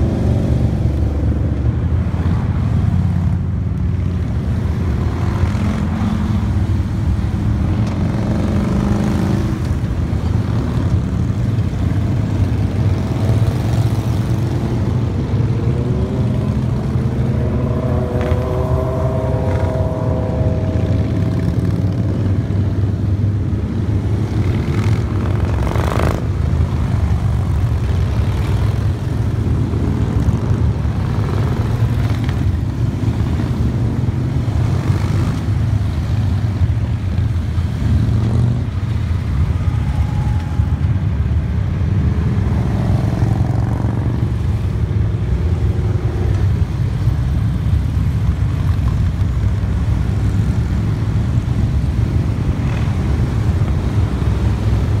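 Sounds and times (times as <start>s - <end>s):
motorcycles riding past: 0.0s - 55.0s.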